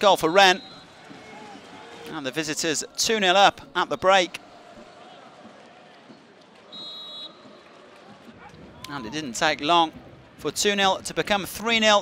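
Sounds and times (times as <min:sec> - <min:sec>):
referee's whistle blast: 0:00.4 - 0:00.9, 0:06.7 - 0:07.5.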